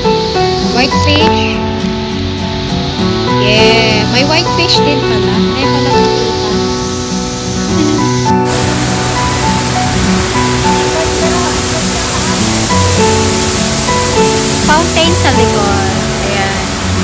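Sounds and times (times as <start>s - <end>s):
background music: 0.0s - 17.0s
waterfall rushing: 0.0s - 17.0s.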